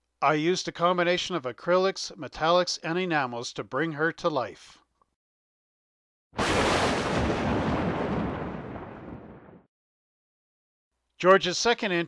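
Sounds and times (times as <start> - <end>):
loud rumbling boom: 6.4 - 9.7.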